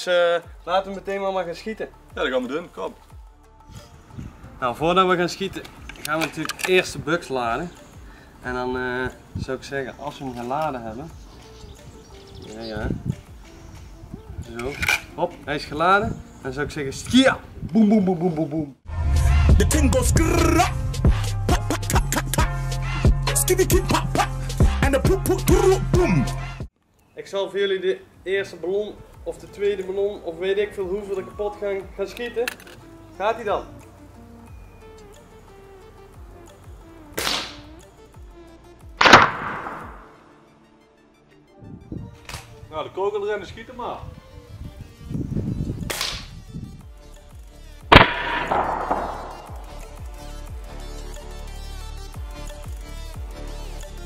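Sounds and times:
air rifle being loaded: 5.6 - 6.9, 14.6 - 15.1, 32.1 - 32.9, 39.0 - 39.8
rifle barrel snapping shut: 5.6 - 6.9, 14.6 - 15.1, 32.4 - 32.8, 39.0 - 40.1, 47.9 - 49.8.

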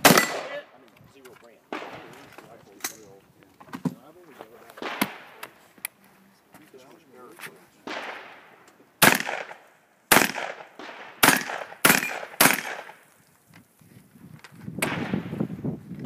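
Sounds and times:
shotgun shots with echo: 0.0 - 0.7, 1.7 - 2.3, 4.8 - 5.5, 7.8 - 13.0, 14.8 - 15.5.

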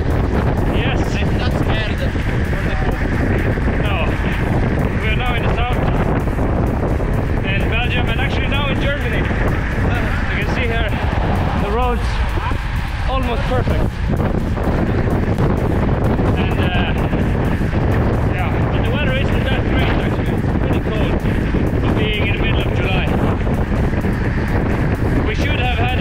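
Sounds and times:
heavy wind noise on microphone: 0.0 - 26.0
rider talking: 0.7 - 6.1, 7.4 - 11.0, 11.6 - 14.0, 16.3 - 17.3, 18.3 - 23.5, 25.2 - 26.0.

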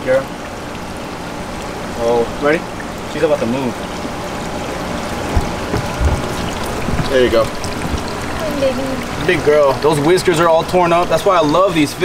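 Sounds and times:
water rushing into pond: 0.0 - 12.0
water splashing and dripping: 0.0 - 12.0
dull thumps: 5.1 - 8.6.

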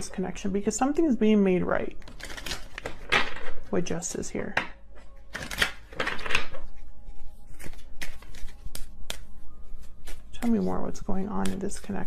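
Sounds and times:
cards being shuffled: 2.0 - 3.7, 5.3 - 10.7, 11.3 - 12.0
card taps and snaps: 7.6 - 9.3.

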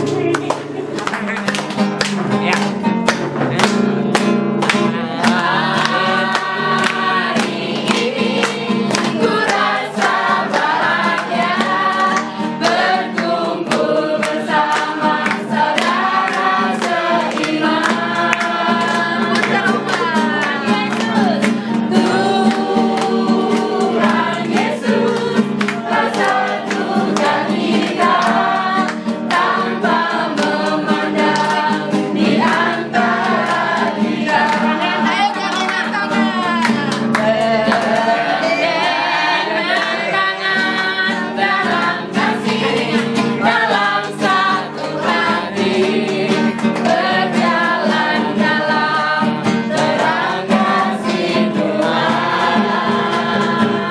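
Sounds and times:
strummed classical guitar: 0.0 - 53.9
people singing together: 3.3 - 53.9.

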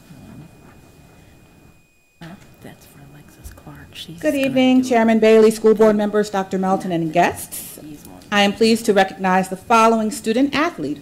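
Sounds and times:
speech on microphone: 2.2 - 6.1
faint speech in room: 2.2 - 11.0.

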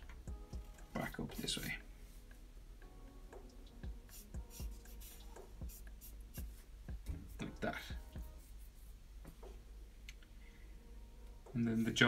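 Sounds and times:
marker scratching on paper: 4.1 - 6.7.

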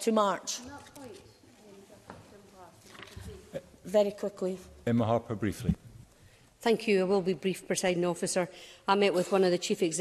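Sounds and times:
man speaking: 4.8 - 6.0.

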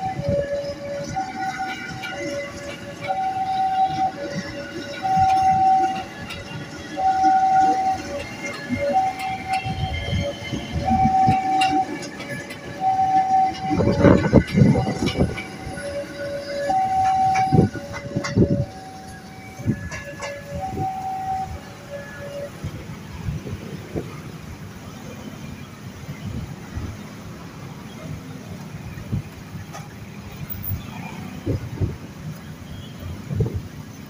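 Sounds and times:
two-tone level crossing alarm: 0.0 - 22.7
train wheel clatter: 0.0 - 27.0, 27.8 - 34.0
electric train rumbling past: 0.0 - 34.0.

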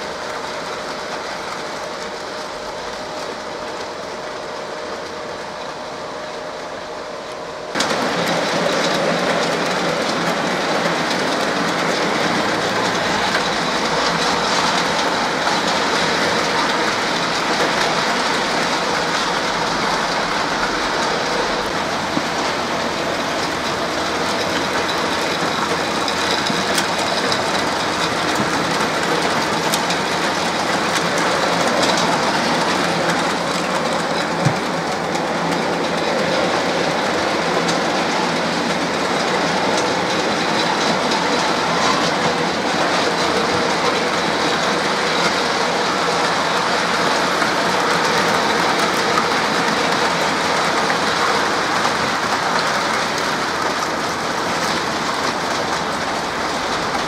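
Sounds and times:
model train wheels rattling: 7.7 - 57.0.

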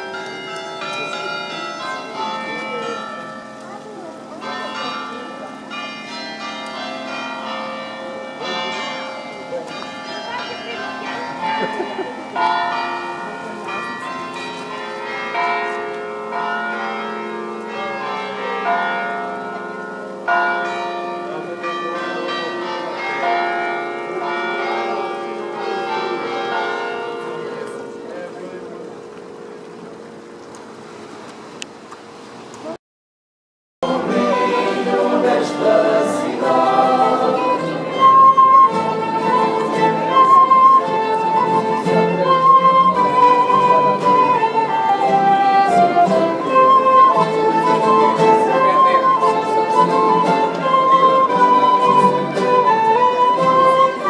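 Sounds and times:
church bells ringing: 0.0 - 30.5, 33.8 - 54.0.

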